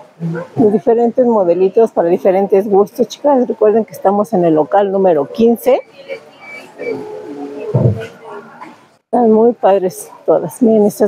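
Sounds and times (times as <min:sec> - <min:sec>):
short low thump: 0:07.7 - 0:08.2.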